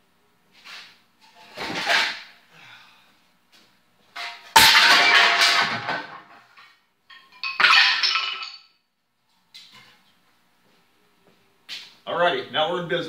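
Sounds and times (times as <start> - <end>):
garden tools clattering on concrete: 7.1 - 8.7.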